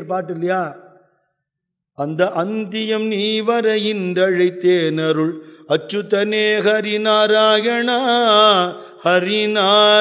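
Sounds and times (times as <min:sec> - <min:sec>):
man singing a chant: 0:02.0 - 0:10.0.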